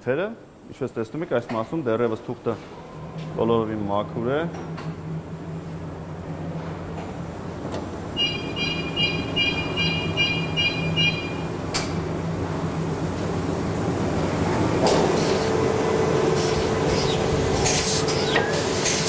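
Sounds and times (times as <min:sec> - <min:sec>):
printing press running: 0:05.6 - 0:19.0.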